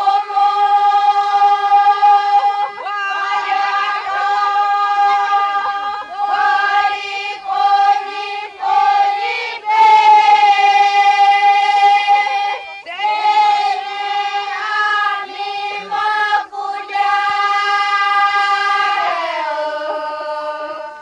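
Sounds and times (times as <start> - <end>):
group of voices chanting: 0.0 - 21.0.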